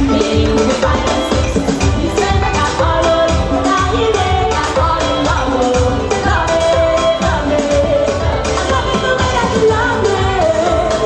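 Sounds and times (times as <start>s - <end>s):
drums keeping a steady beat: 0.0s - 11.0s
keyboard: 0.0s - 11.0s
woman singing into a microphone: 0.0s - 11.0s.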